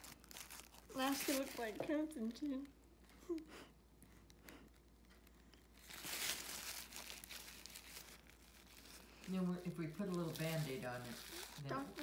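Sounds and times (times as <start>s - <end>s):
paper tissue crumpling: 0.0s - 2.5s, 4.8s - 12.0s.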